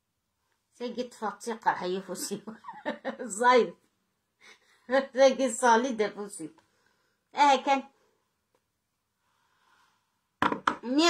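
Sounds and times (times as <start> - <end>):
woman speaking: 0.8 - 3.8, 4.9 - 6.6, 10.8 - 11.0.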